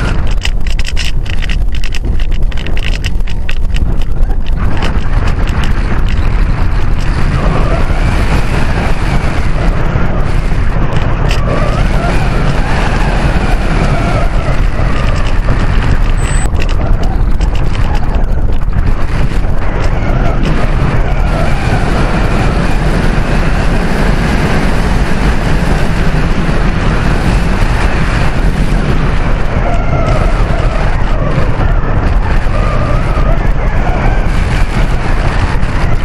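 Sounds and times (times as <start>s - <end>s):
heavy low rumble: 0.0s - 36.0s
wind buffeting microphone: 0.0s - 36.0s.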